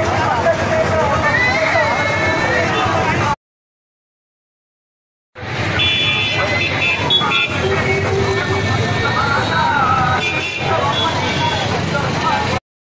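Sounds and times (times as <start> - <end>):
street crowd voices: 0.0 - 3.4, 5.4 - 12.6
traffic rumble: 0.0 - 3.4, 5.4 - 12.6.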